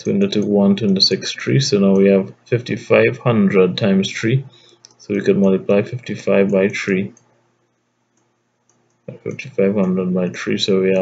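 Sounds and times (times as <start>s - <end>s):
person speaking: 0.0s - 7.2s, 9.1s - 11.0s
faint low hum: 0.0s - 11.0s.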